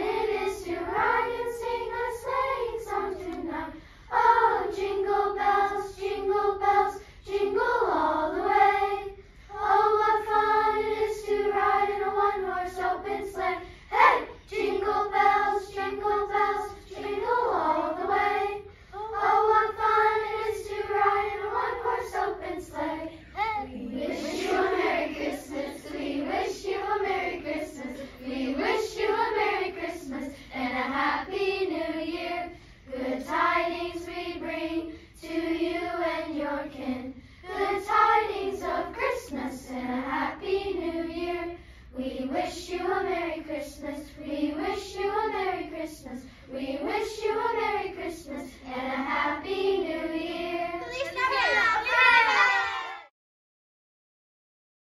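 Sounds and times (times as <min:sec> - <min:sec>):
children's choir singing: 0:00.0 - 0:53.1.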